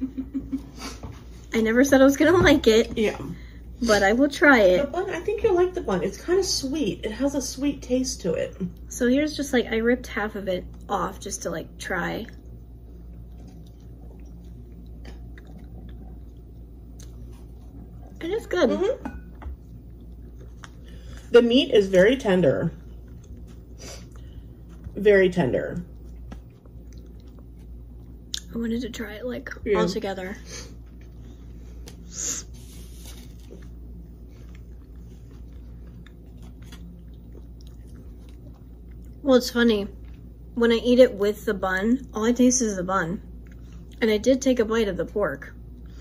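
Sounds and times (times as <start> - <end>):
person chewing: 12.5 - 18.2, 19.6 - 21.3, 22.8 - 24.9, 25.9 - 28.5, 30.8 - 39.2.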